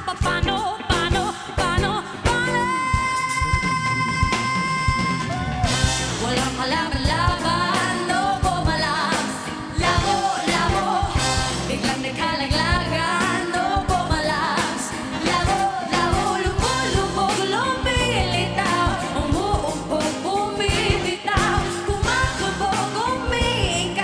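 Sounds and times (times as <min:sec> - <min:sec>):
pop band playing: 0:00.0 - 0:24.0
woman singing: 0:00.0 - 0:24.0
steady drum beat: 0:01.8 - 0:24.0.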